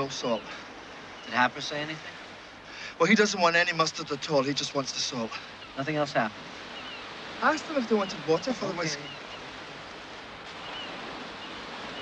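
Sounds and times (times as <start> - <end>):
sea surf washing on shore: 0.0 - 12.0.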